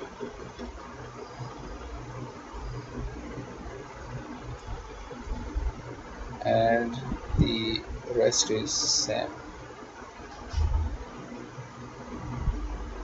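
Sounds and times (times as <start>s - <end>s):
background hiss: 0.0s - 13.0s
low electrical hum: 0.0s - 13.0s.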